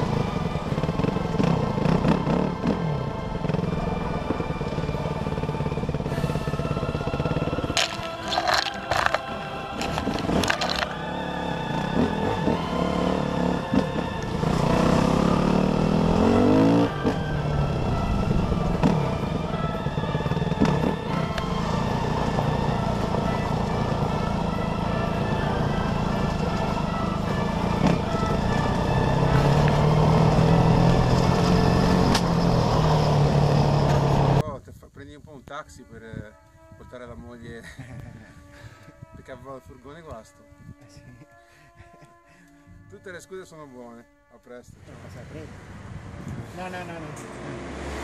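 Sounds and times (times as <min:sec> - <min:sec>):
dirt bike engine revving: 0:00.0 - 0:03.8, 0:04.6 - 0:19.2, 0:20.2 - 0:34.4.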